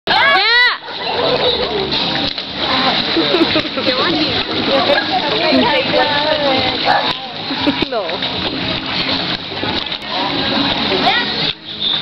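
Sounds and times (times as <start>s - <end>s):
pool water splashing: 0.1s - 12.0s.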